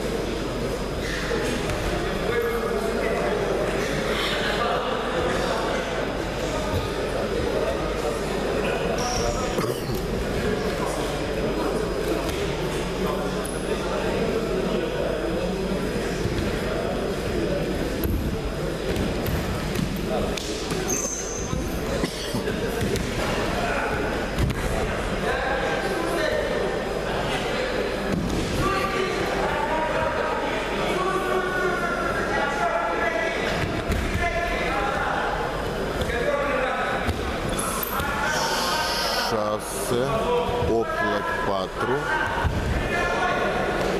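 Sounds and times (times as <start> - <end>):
people calling out in hall: 37.6 - 39.4.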